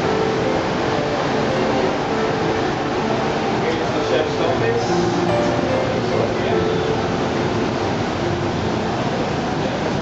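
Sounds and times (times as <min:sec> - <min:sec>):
ventilation rushing noise: 0:00.0 - 0:10.0.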